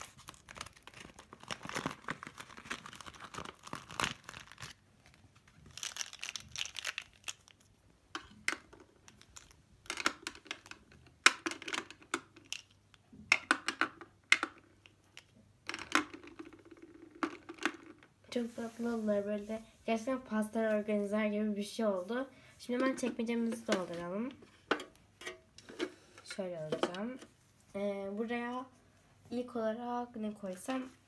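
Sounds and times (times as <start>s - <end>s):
plastic packaging crinkling: 0.0s - 7.8s, 9.1s - 10.8s.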